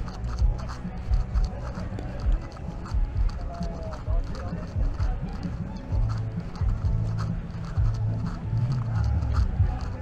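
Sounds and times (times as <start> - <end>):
drum beat: 0.0 - 10.0.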